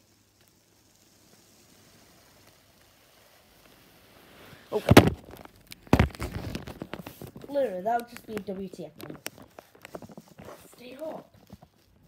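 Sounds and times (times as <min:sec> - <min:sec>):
phone rustling against fabric: 0:04.3 - 0:12.0
small clicks: 0:05.4 - 0:10.7.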